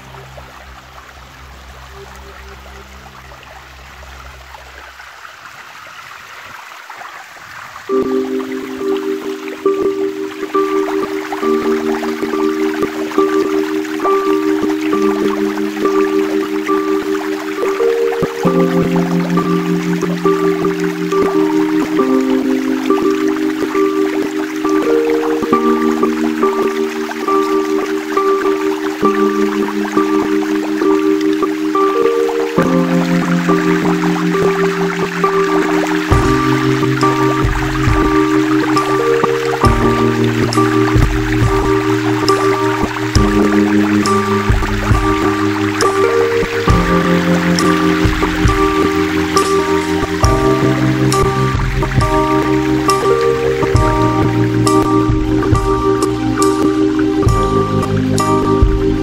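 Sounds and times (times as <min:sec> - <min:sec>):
water rushing over rocks: 0:00.0 - 0:59.0
slow chord music with ticking: 0:07.9 - 0:59.0.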